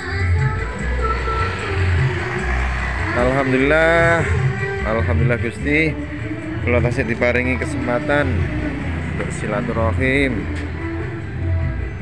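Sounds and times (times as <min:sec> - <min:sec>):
vehicle running: 0:00.0 - 0:12.0.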